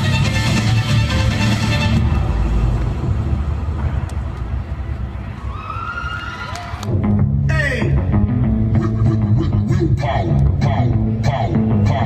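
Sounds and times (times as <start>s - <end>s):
loud low rumble: 1.2s - 5.8s.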